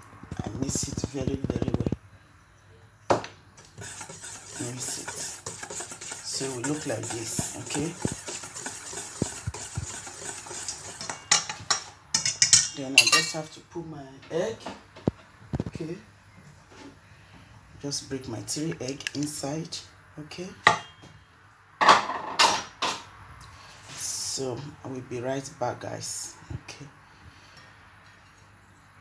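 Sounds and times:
utensil scraping flour in bowl: 3.6s - 11.8s
utensil clinking metal bowl: 3.8s - 13.4s.

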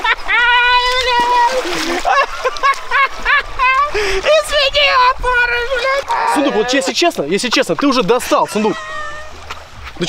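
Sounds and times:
laughter: 0.0s - 0.5s, 1.8s - 4.0s
water splash: 0.0s - 5.1s
man yelling: 5.8s - 7.1s, 8.2s - 9.1s.

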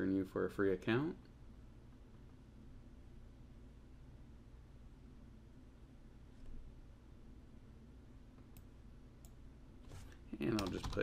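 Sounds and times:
computer mouse clicks: 8.4s - 11.0s.

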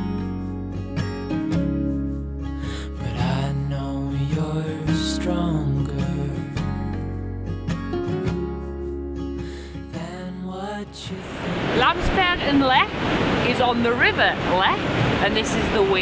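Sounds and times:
background music: 0.0s - 12.8s
river water pouring over weir: 10.4s - 16.0s.

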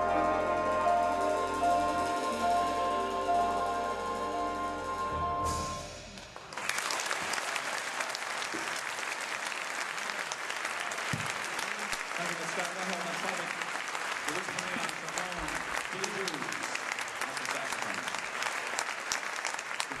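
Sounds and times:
audience applauding: 6.1s - 20.0s.

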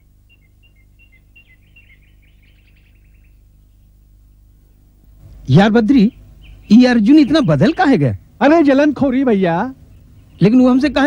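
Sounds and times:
faint bird chirps: 0.0s - 11.0s
low steady hum: 0.0s - 11.0s.

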